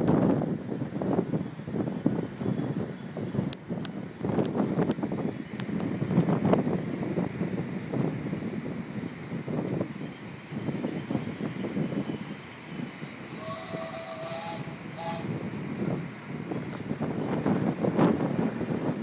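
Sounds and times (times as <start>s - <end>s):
steam locomotive working: 9.9s - 19.0s
steam whistle blast: 13.3s - 15.4s.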